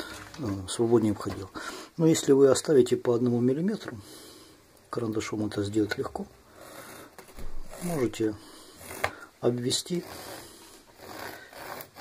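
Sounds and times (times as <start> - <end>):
pen tip rubbing on felt: 9.8 - 12.0.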